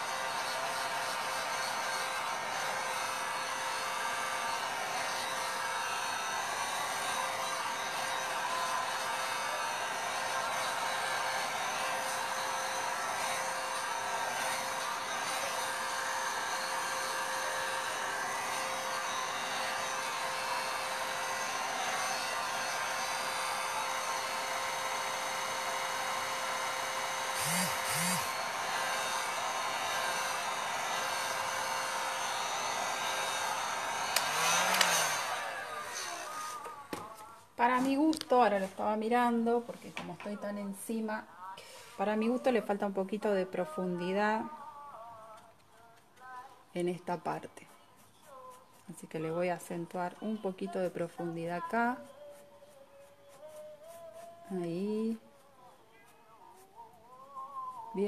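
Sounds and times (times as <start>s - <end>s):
electric hair dryer blowing: 0.0s - 44.5s, 49.1s - 52.0s, 54.4s - 55.2s.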